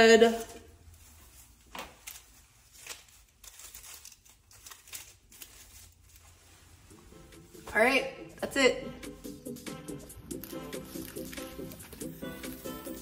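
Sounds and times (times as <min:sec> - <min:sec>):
foil crinkling: 0:00.9 - 0:06.9, 0:10.3 - 0:13.0.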